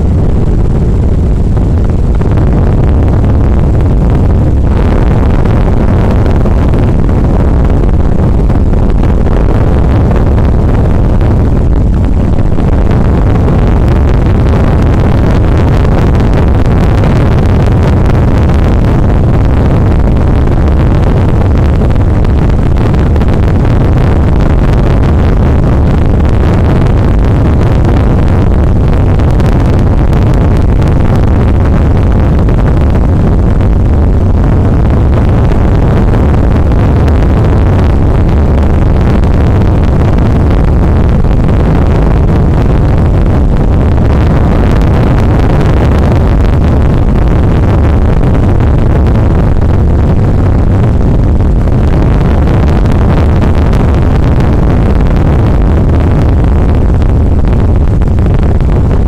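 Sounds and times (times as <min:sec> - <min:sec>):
distorted electronic noise: 0:00.0 - 0:59.0.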